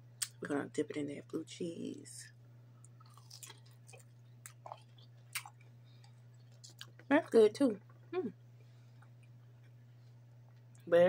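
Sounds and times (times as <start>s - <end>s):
steady low hum: 0.0s - 11.0s
person chewing: 2.8s - 7.1s.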